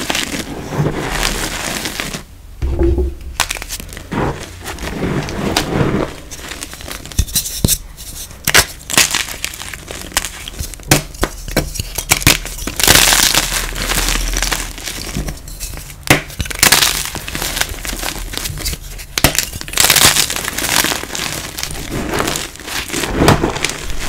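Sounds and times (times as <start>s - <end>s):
chalk blocks crushed by hand: 16.1s - 24.0s.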